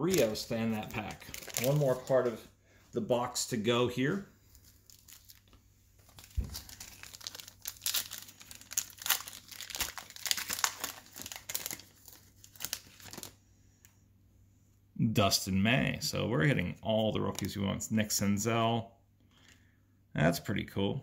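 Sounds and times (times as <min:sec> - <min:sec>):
foil wrapper tearing and crinkling: 0:00.0 - 0:02.2, 0:04.5 - 0:13.4.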